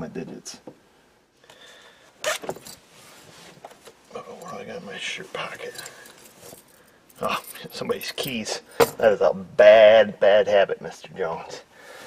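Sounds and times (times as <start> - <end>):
keys clinking: 5.6 - 9.0.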